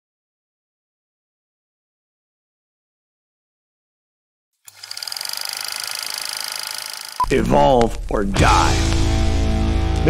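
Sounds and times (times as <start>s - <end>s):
film projector clatter and whine: 4.7s - 7.2s.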